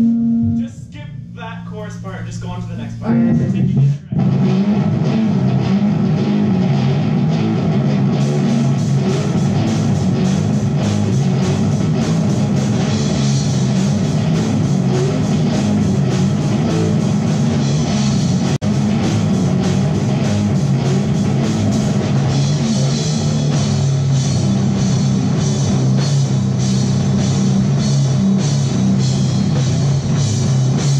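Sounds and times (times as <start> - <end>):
electric guitar: 0.0 - 1.3, 2.9 - 30.9
drum kit: 0.0 - 30.9
electric bass: 0.0 - 30.9.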